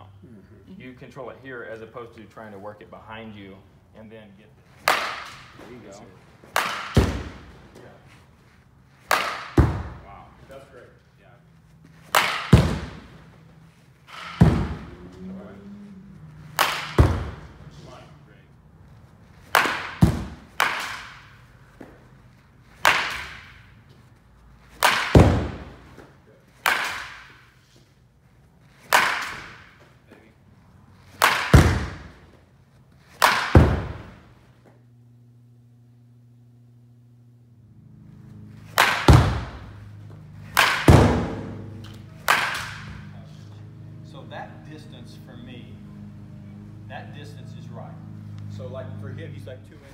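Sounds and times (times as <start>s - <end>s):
baseball bat cracking balls: 4.6s - 10.2s, 11.7s - 15.3s, 16.1s - 18.1s, 19.2s - 27.9s, 28.6s - 34.8s, 38.4s - 43.2s.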